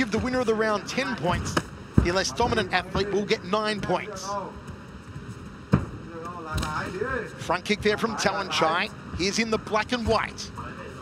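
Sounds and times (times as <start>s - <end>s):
man talking: 0.0s - 4.6s, 6.1s - 11.0s.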